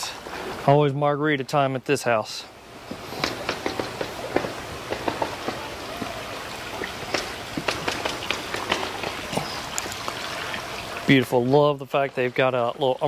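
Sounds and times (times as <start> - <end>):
steady background hiss: 0.0 - 13.0
sharp taps and knocks: 2.9 - 6.1, 6.8 - 10.0.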